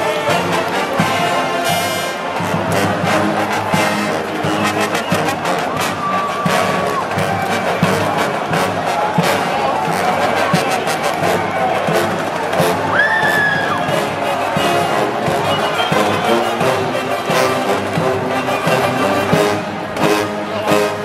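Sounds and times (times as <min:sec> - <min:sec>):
marching band playing: 0:00.0 - 0:21.0.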